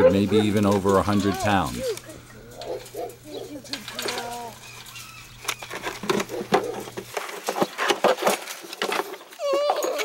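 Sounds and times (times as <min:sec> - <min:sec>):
puppies whining: 0:00.0 - 0:07.0, 0:09.3 - 0:10.0.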